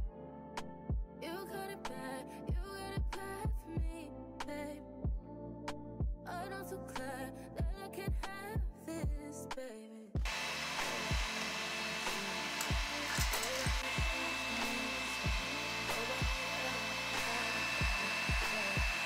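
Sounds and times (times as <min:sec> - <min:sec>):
small electric fan whirring: 0:10.2 - 0:19.0
music with deep regular beat: 0:13.6 - 0:14.2.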